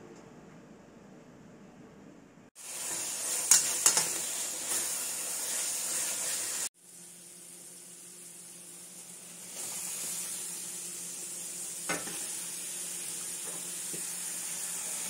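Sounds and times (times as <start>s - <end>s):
spice paste sizzling in oil: 2.6s - 15.0s
metal spatula scraping: 2.8s - 6.7s.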